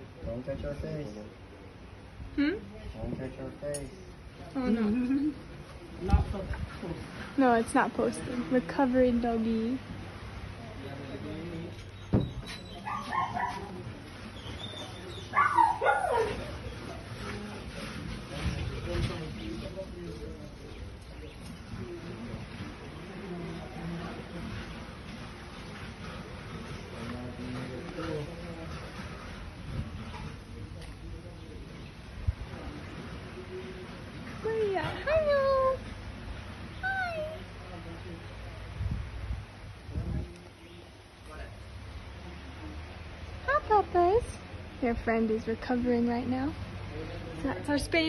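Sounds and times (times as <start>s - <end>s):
dog whining and yelping: 12.5s - 13.8s, 14.5s - 16.8s.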